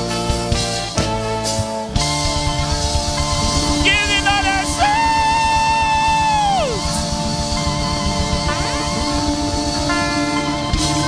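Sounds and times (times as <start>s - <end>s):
gospel band music: 0.0s - 11.0s
guitar: 0.0s - 11.0s.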